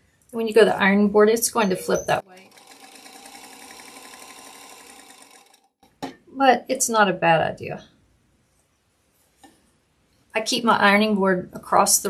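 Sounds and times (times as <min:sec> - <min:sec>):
sewing machine stitching: 0:01.7 - 0:05.8.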